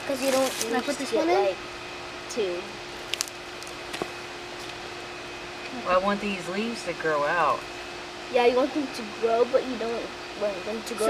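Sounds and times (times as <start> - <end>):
faint steady hum: 0.0 - 11.0
hands rustling in mulch: 0.1 - 1.0.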